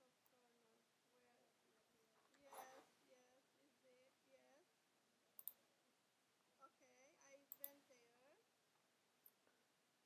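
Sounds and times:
faint clicks: 5.4 - 5.6, 7.5 - 7.8.

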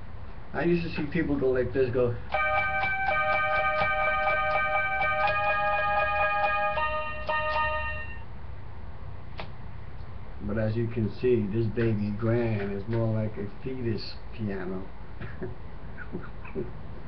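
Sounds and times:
toy keyboard playing chords: 2.3 - 8.2.

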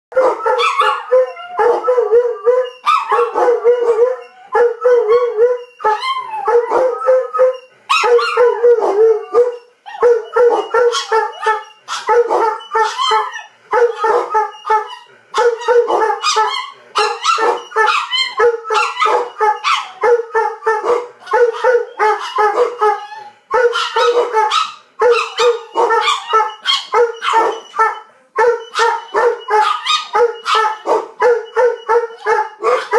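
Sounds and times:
dogs howl-like grumbles and yips: 0.1 - 32.9.

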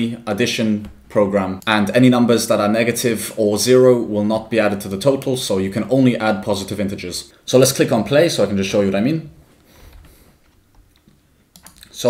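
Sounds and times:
computer mouse clicks: 9.9 - 11.9.

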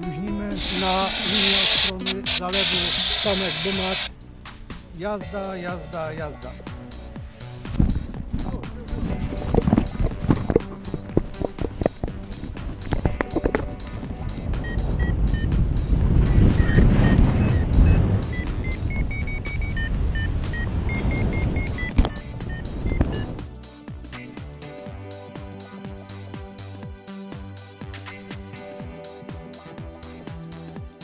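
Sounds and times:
wind rushing over microphone: 7.7 - 23.4
variometer beeping: 14.4 - 15.6, 16.3 - 23.4.

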